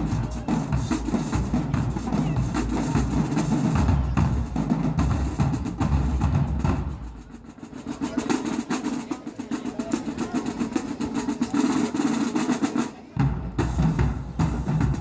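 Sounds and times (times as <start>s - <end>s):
bass drums: 0.0s - 7.2s, 13.2s - 15.0s.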